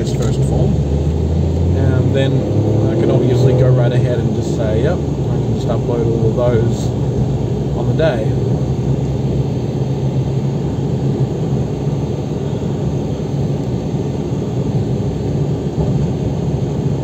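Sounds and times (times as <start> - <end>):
car engine and tyre noise: 0.0 - 17.0.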